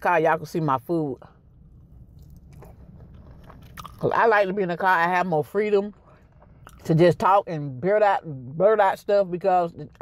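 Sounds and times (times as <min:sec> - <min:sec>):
quiet chewing: 0:01.4 - 0:04.1, 0:05.9 - 0:06.9.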